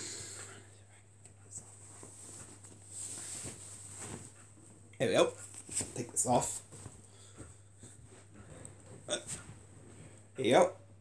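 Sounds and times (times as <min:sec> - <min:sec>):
fabric rustling: 0:01.7 - 0:04.8, 0:05.4 - 0:10.2.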